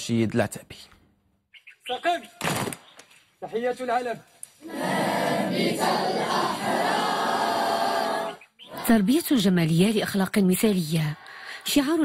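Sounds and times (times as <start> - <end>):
boys singing in unison: 4.6 - 8.8.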